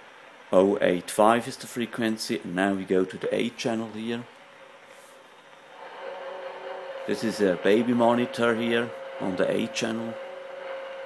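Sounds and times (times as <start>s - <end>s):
radio hiss: 0.0s - 11.0s
steady humming tone: 3.3s - 11.0s.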